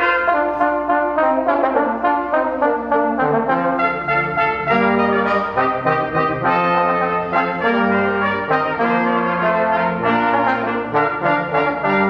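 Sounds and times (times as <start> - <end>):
brass quartet playing chords: 0.0 - 12.0.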